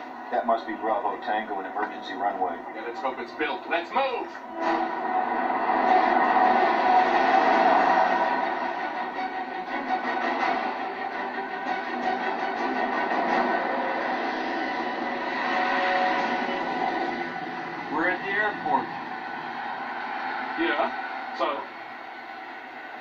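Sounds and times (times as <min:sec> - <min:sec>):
sustained soundtrack tones: 0:04.4 - 0:23.0
vehicle drive-by drone: 0:13.1 - 0:23.0.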